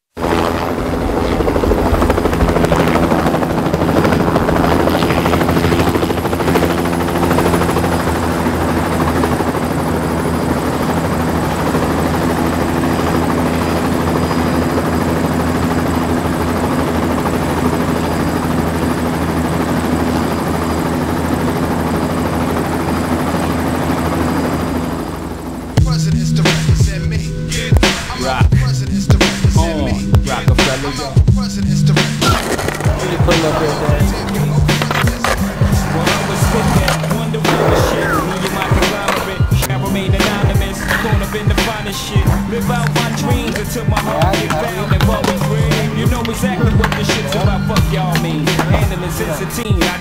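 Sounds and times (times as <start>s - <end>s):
helicopter rotor drone: 0.0s - 50.0s.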